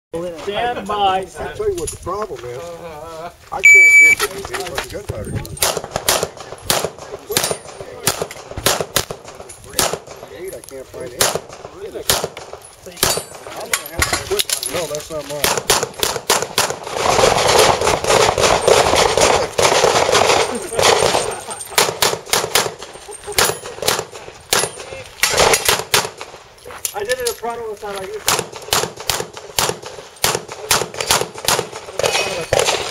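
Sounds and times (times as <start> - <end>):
handgun shots: 28.2 - 32.9.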